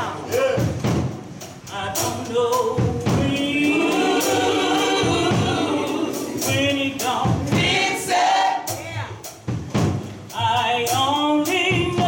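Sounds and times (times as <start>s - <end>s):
gospel choir singing: 0.0s - 8.9s.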